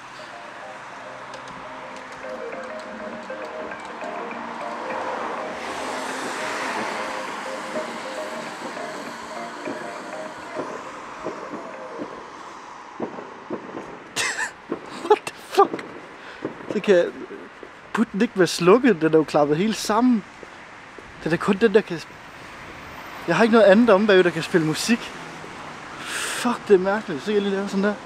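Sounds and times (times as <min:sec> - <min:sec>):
melody of held notes: 0:00.0 - 0:12.3
rushing noise: 0:00.0 - 0:17.5.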